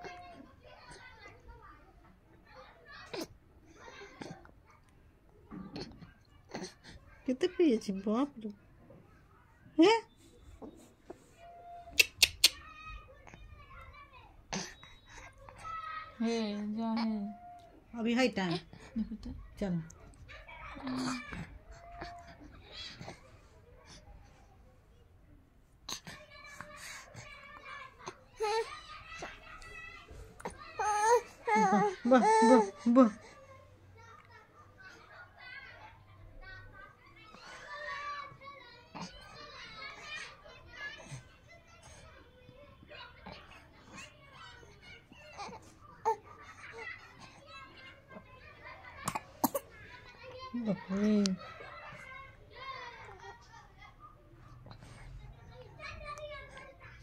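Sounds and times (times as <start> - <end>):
baby babbling and cooing: 5.7 - 7.0, 20.7 - 24.0, 25.9 - 29.4, 30.4 - 33.4, 38.9 - 39.3, 43.2 - 47.4
baby vocalizing: 49.0 - 49.7.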